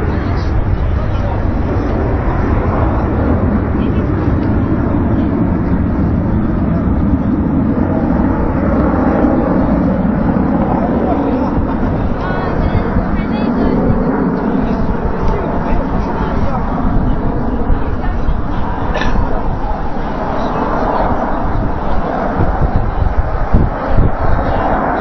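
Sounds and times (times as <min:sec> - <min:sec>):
aircraft engine rumble: 0:00.0 - 0:25.0.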